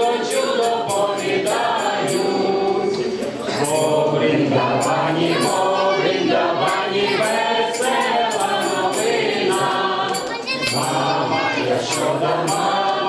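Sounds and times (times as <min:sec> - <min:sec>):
tambourine jingles: 0:00.0 - 0:05.8, 0:06.6 - 0:13.0
people singing a carol together: 0:00.0 - 0:13.0.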